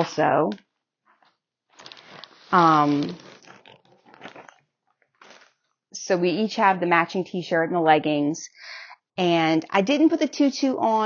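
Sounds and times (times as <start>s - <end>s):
plastic bag crinkling: 1.7s - 5.7s
person saying um: 2.6s - 3.2s.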